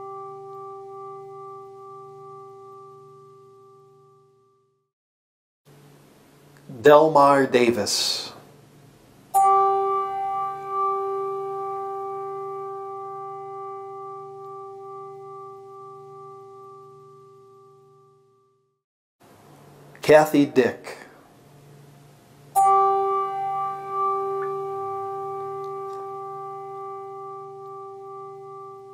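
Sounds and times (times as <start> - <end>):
bell ringing: 0.0 - 4.2, 9.4 - 18.1, 22.6 - 28.9.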